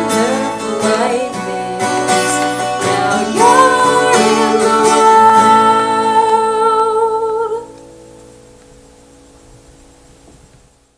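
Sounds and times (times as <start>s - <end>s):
strummed acoustic guitar: 0.0s - 9.3s.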